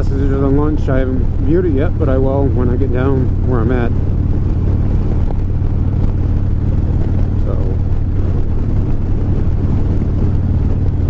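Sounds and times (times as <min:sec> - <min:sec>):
motorcycle engine cruising: 0:00.0 - 0:11.0
wind and road rush: 0:00.0 - 0:11.0.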